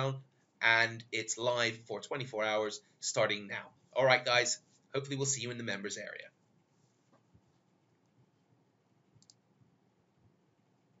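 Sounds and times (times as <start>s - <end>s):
faint computer mouse clicks: 9.2s - 9.4s.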